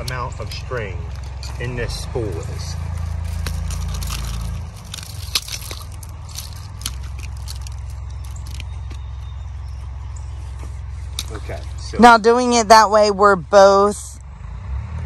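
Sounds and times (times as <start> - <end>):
steady low rumble: 0.0 - 14.5
trimmer line scraping and clicking: 2.4 - 9.1.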